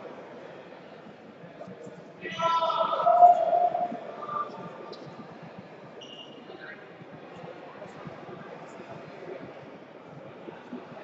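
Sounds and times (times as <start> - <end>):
crowd hubbub: 0.0 - 11.0.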